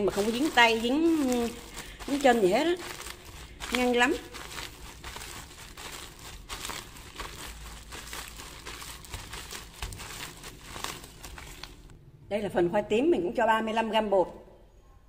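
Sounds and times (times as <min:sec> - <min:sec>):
plastic bag crinkling: 0:00.0 - 0:11.9.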